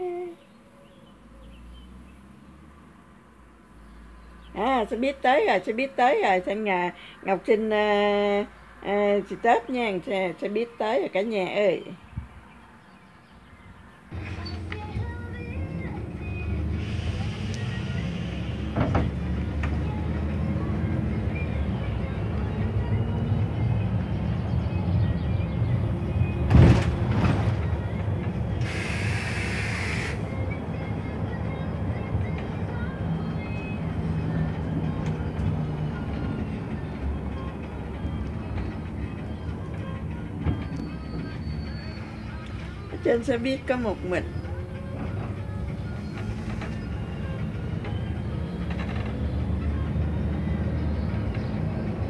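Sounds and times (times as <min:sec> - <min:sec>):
bus engine and road rumble: 0:00.0 - 0:52.0
short hiss of air: 0:28.6 - 0:30.2.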